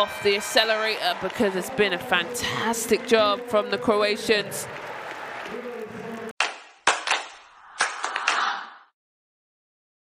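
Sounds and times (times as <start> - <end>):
arena crowd noise: 0.0 - 6.4.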